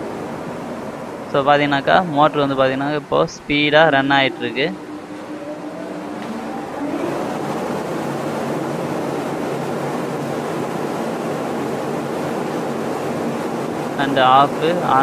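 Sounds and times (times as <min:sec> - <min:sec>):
exhaust fan rushing air: 0:00.0 - 0:15.0.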